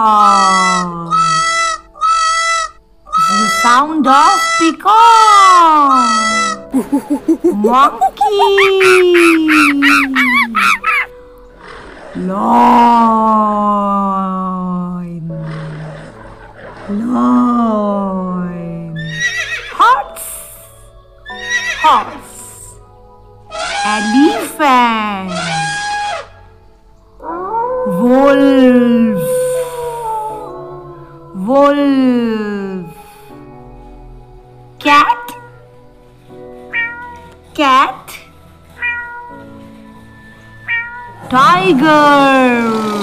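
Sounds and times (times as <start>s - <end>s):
peacock calling: 0.2s - 11.2s, 23.5s - 24.6s, 25.2s - 26.5s
horse whinnying: 9.5s - 12.8s, 19.0s - 19.8s, 21.3s - 22.1s, 25.4s - 26.4s, 40.1s - 41.9s.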